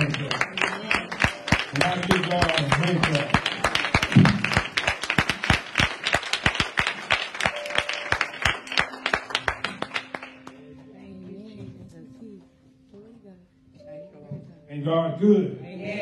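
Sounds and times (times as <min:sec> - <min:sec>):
hands clapping: 0:00.0 - 0:10.6.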